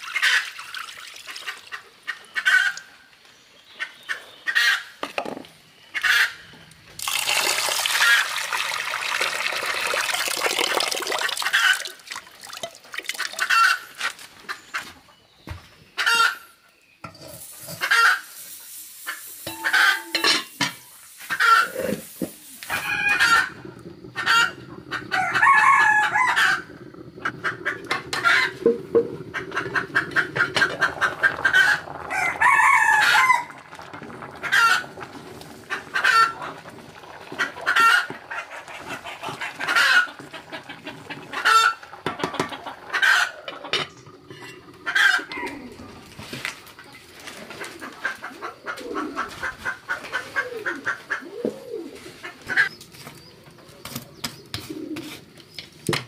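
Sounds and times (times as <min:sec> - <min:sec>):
chickens clucking: 0:05.9 - 0:06.4, 0:21.2 - 0:33.0, 0:34.1 - 0:55.4
rooster crowing: 0:25.1 - 0:26.7, 0:32.1 - 0:33.5.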